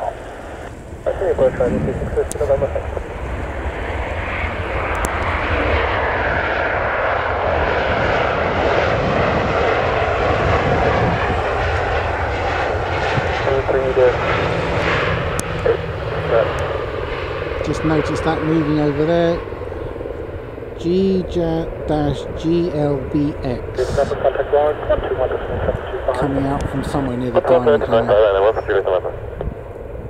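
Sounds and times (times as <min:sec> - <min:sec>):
jet engines at high power: 0:00.0 - 0:30.0.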